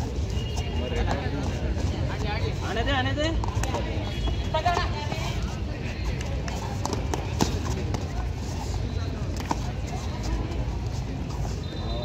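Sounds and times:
voices of players and onlookers: 0:00.0 - 0:12.0.

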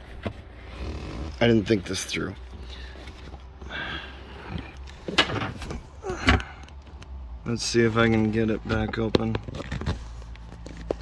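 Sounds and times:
rustling and scraping of handling: 0:00.0 - 0:11.0.

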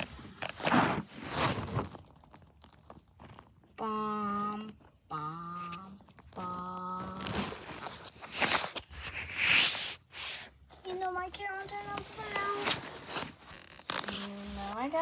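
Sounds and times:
plastic bag rustling: 0:00.0 - 0:03.5
child speaking: 0:03.7 - 0:07.2, 0:10.7 - 0:12.8, 0:14.2 - 0:15.0.

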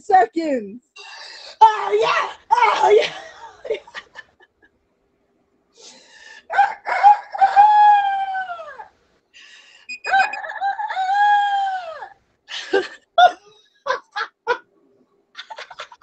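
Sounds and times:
woman imitating rooster crow: 0:10.1 - 0:12.1.

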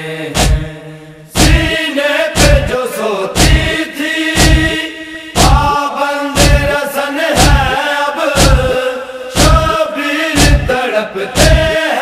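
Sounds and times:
men chanting in unison: 0:00.0 - 0:12.0
rhythmic chest-beating thumps: 0:00.2 - 0:12.0.

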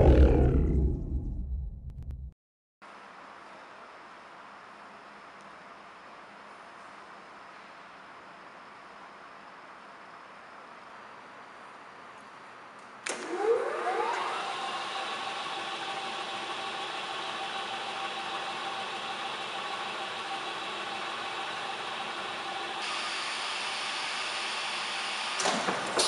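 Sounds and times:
electric motor whine and hum: 0:13.1 - 0:25.4.

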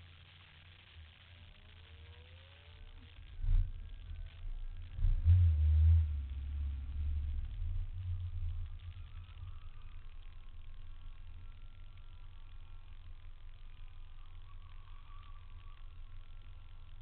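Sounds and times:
car engine idling: 0:00.0 - 0:17.0.

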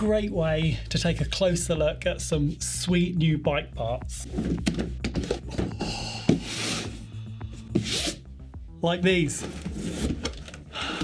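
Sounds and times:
background music: 0:00.0 - 0:11.0
box scraping on wooden table: 0:04.2 - 0:07.0, 0:07.7 - 0:08.3, 0:09.3 - 0:10.5.

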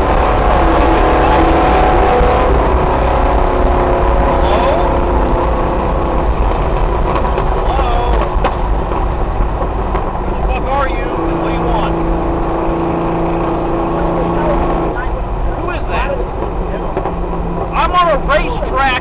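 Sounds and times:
car engine at speed: 0:00.0 - 0:19.0
road and wind noise: 0:00.0 - 0:19.0.

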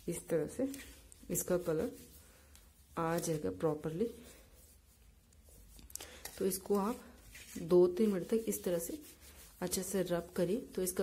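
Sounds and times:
hands scratching powder on steel plate: 0:00.0 - 0:11.0.

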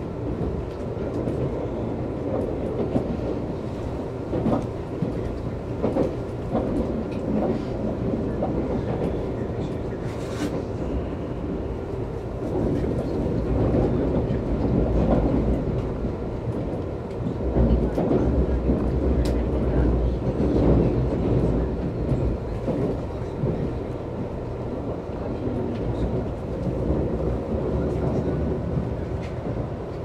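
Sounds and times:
train wheels rumbling on rail: 0:00.0 - 0:30.0.

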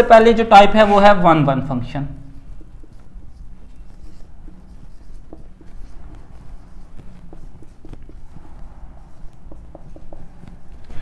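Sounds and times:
low room hum: 0:01.4 - 0:11.0
marker writing on whiteboard: 0:02.2 - 0:11.0.

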